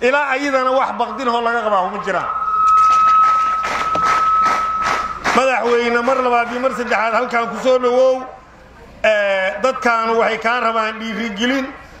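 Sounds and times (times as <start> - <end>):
microphone feedback squeal: 0.0 - 8.3, 9.1 - 12.0
crowd noise: 0.0 - 12.0.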